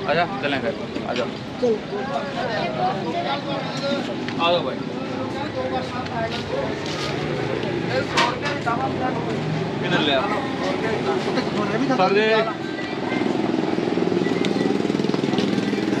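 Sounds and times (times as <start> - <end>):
men talking: 0.0 - 13.3.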